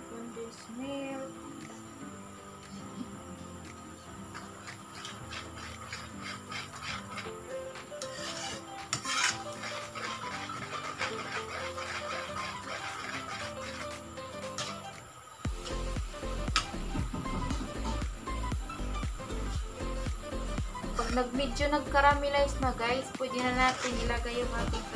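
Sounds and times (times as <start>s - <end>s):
background music: 0.0s - 24.9s
metal spatula scraping a wok: 4.3s - 14.9s, 23.3s - 24.9s.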